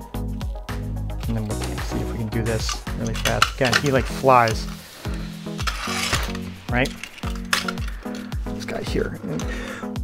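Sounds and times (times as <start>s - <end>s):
background music with steady beat: 0.0s - 10.0s
toy car motor whirring: 3.2s - 8.2s.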